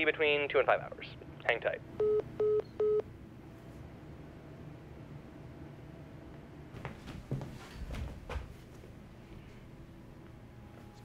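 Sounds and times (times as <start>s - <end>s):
short phone beeps: 2.0s - 3.0s.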